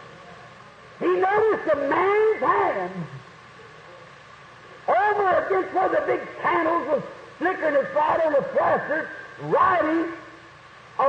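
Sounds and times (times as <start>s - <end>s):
recording hiss: 0.0s - 11.0s
man preaching: 4.9s - 10.3s.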